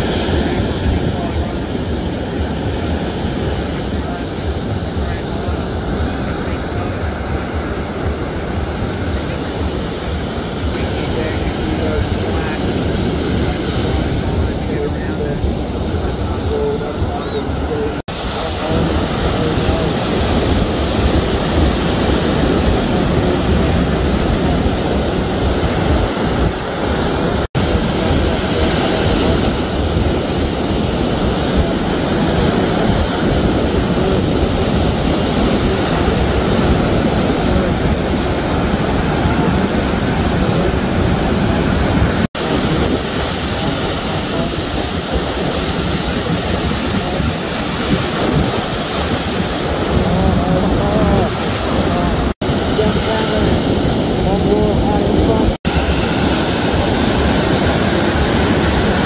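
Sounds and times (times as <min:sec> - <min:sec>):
surf breaking on shore: 0:00.0 - 0:59.0
wind on microphone: 0:00.0 - 0:59.0.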